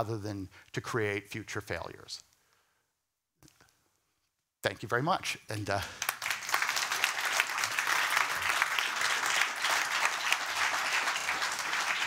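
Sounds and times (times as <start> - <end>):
audience applauding: 5.9 - 12.0.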